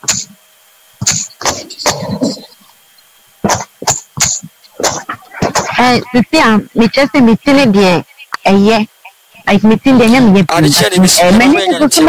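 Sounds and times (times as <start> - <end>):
person coughing: 1.0 - 2.5.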